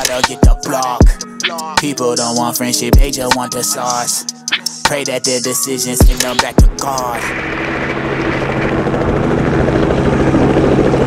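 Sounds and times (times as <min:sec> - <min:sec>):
helicopter engine hum: 0:00.0 - 0:11.0
helicopter rotor chopping: 0:00.0 - 0:11.0.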